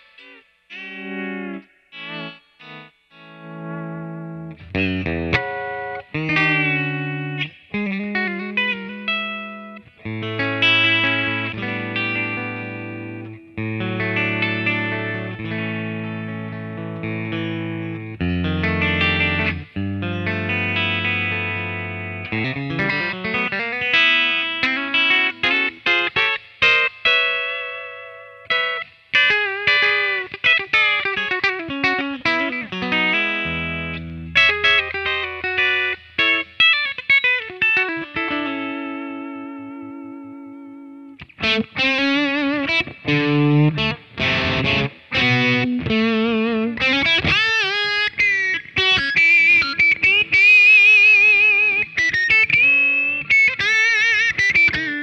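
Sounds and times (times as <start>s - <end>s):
electric guitar through amp: 0.0s - 55.0s.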